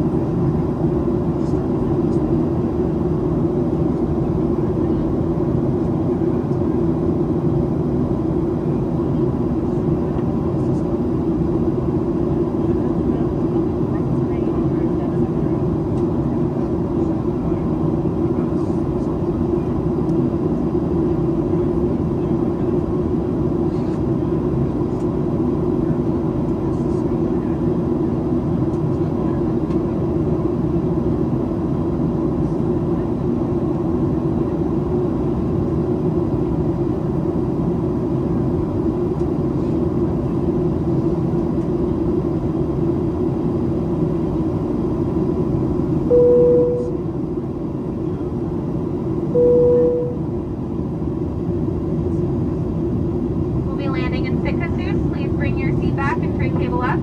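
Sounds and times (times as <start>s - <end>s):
jet engines humming: 0.0s - 57.0s
faint high-pitched hum: 46.1s - 47.1s, 49.3s - 50.3s.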